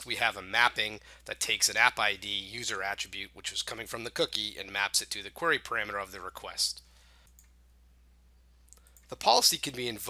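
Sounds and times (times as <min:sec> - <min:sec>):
faint clicks: 0:07.2 - 0:07.6.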